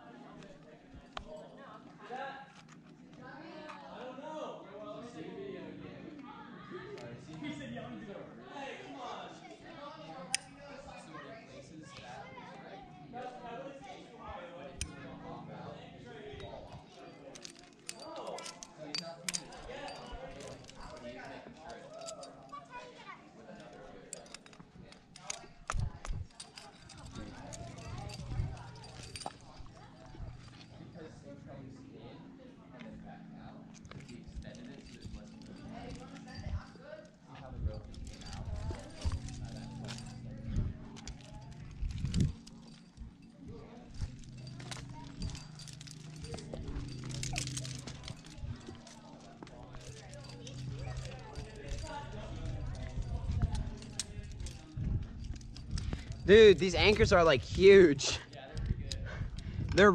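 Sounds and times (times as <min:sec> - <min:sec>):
climbing gear clinking: 0:09.8 - 0:11.2, 0:14.7 - 0:31.6, 0:32.8 - 0:59.9.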